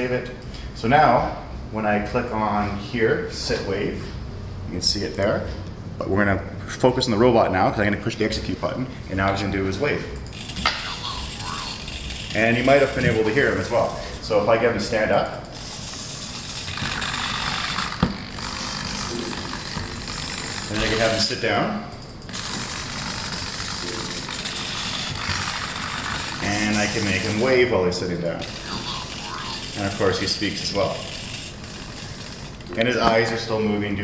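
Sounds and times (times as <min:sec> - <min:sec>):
servo motors moving: 0:10.3 - 0:14.0, 0:15.5 - 0:21.3, 0:22.3 - 0:27.7, 0:28.4 - 0:32.7
thin synthesized voice: 0:10.7 - 0:11.9, 0:28.4 - 0:29.9.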